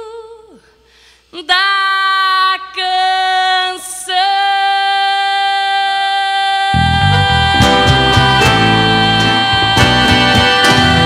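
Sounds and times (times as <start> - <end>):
woman singing long note: 4.2 - 11.0
band with bass guitar accordion: 6.8 - 11.0.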